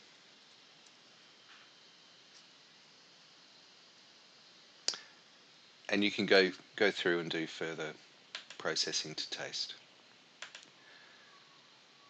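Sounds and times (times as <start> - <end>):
faint ticks: 4.8 - 5.1
computer mouse click: 8.3 - 8.6, 10.4 - 10.7.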